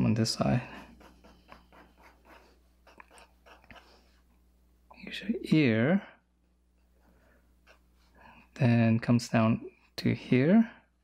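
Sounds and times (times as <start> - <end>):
pencil scratching on paper: 0.0 - 4.3, 7.6 - 8.2.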